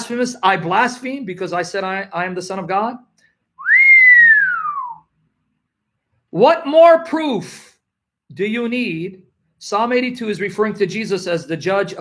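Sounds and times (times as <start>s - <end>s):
man whistling a sliding note: 3.6s - 5.1s.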